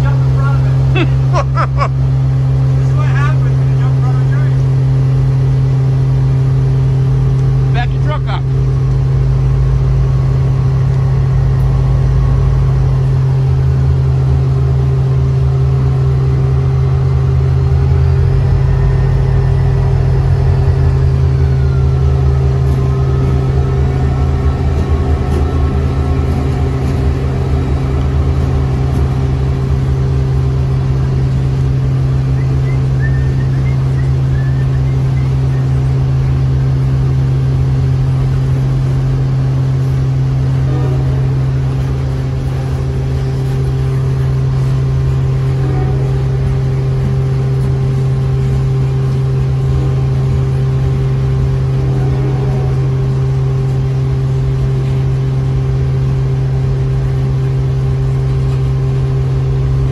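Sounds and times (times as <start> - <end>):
diesel locomotives rumbling past: 0.0 - 59.9
steady low hum: 0.0 - 59.9
freight cars rolling by: 9.4 - 55.1.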